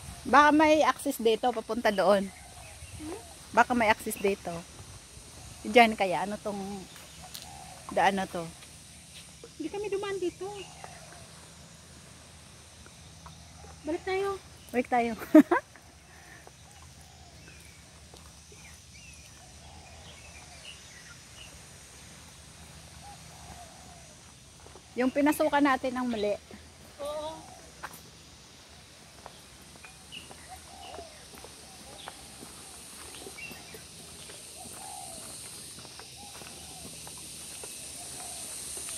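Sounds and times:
steady high hiss: 0:00.0 - 0:38.9
faint bird calls: 0:09.1 - 0:11.7, 0:15.7 - 0:38.9
dove cooing: 0:34.0 - 0:35.5, 0:37.8 - 0:38.9.

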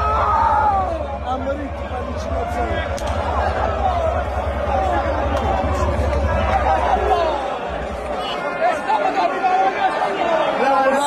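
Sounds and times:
crowd shouting and singing: 0:00.0 - 0:11.0.

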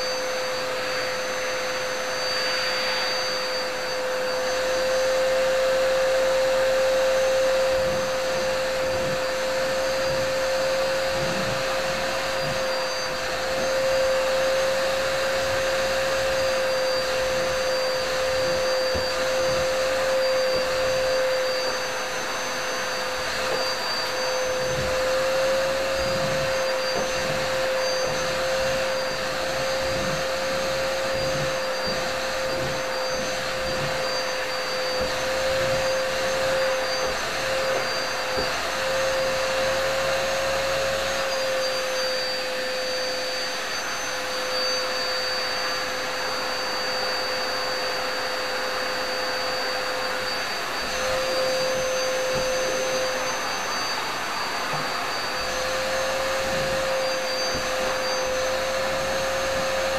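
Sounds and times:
vacuum cleaner motor whining: 0:00.0 - 0:59.9.

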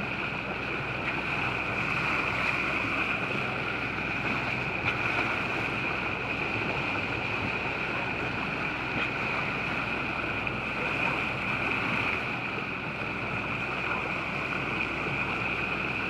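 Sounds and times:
water rushing along boat bow: 0:00.0 - 0:16.0.

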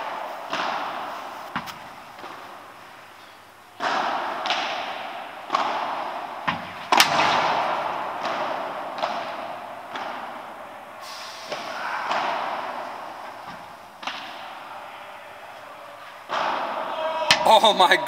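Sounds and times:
padel ball struck by rackets: 0:00.0 - 0:10.7, 0:11.5 - 0:14.6
ball bouncing off glass walls: 0:00.0 - 0:15.0.

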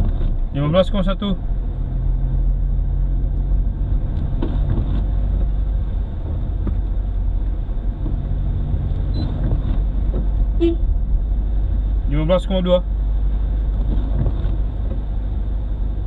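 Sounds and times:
car engine and road drone: 0:00.0 - 0:16.0.

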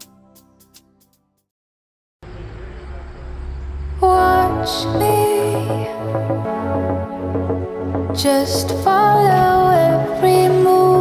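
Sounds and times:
vehicle approaching: 0:02.2 - 0:05.7
road traffic: 0:02.2 - 0:06.3.

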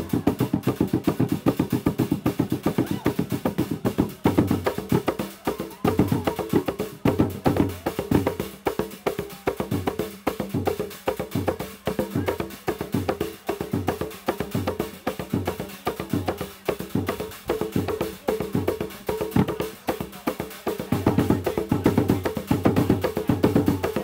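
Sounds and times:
drum ensemble playing fast rhythm: 0:00.0 - 0:24.0.

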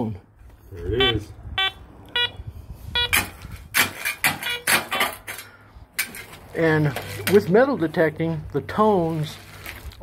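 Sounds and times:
metal detector beeps: 0:01.0 - 0:03.3, 0:04.4 - 0:04.8
shovel scraping gravelly soil: 0:08.7 - 0:10.0.

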